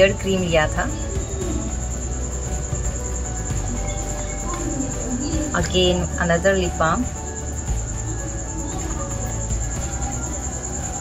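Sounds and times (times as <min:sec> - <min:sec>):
crickets chirping: 0:00.0 - 0:11.0
low hum: 0:00.0 - 0:11.0.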